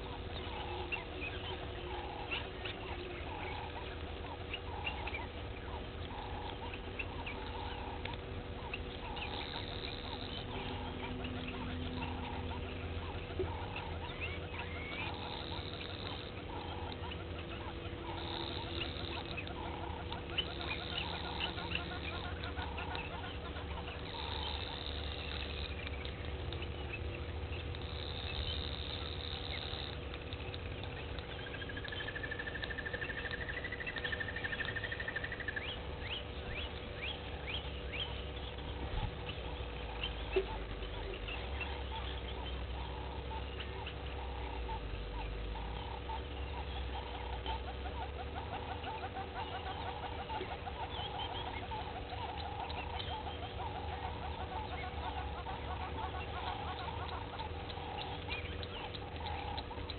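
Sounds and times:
birds chirping and calling: 0.0s - 59.9s
faint steady hum: 0.0s - 59.9s.

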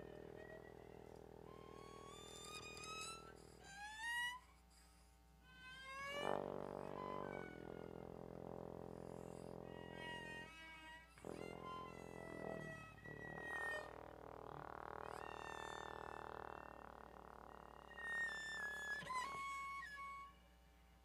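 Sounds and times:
bowed cello: 0.0s - 4.4s, 5.4s - 20.4s
trombone: 6.0s - 10.5s, 11.1s - 18.7s.

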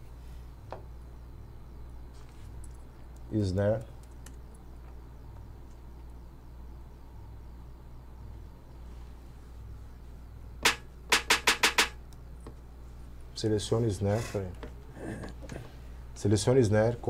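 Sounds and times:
low steady hum: 0.0s - 17.0s
snare drum hits: 10.6s - 12.0s.

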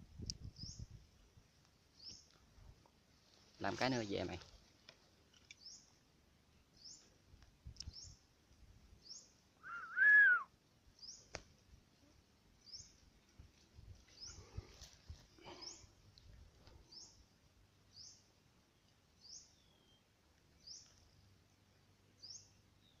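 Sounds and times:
bird chirping: 2.0s - 2.4s, 5.4s - 6.0s, 6.6s - 7.1s, 7.8s - 8.2s, 9.0s - 10.4s, 11.0s - 11.3s, 12.6s - 13.0s, 16.8s - 17.2s, 17.9s - 21.3s, 22.2s - 23.0s
bird whistled call: 9.6s - 10.5s.

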